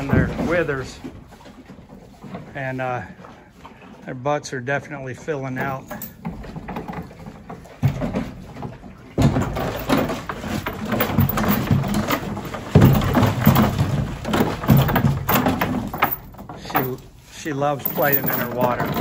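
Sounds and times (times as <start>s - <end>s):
water splashing in plastic bucket: 0.0s - 4.0s, 5.7s - 17.3s.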